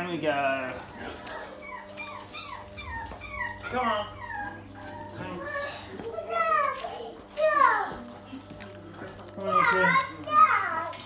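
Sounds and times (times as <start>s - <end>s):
puppies whimpering: 0.4s - 11.0s.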